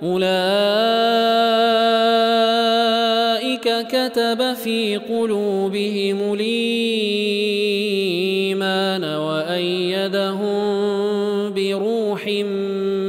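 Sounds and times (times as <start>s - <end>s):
man chanting melodically: 0.0s - 13.0s.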